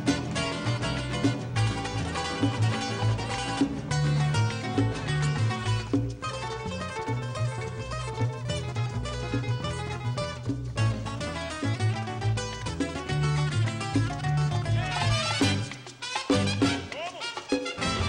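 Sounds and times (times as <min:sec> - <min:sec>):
repeating bass line: 0:00.0 - 0:15.7, 0:16.3 - 0:16.8.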